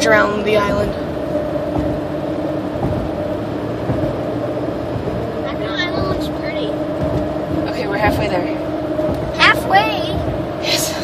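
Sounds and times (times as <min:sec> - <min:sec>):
car road noise: 0:00.0 - 0:11.0.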